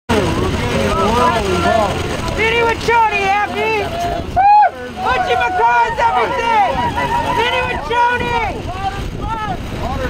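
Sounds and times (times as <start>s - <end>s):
overlapping voices: 0.5s - 9.4s.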